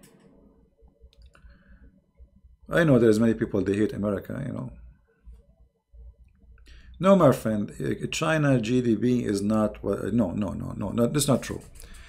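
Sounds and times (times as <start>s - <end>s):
soft clicks: 1.0s - 1.6s.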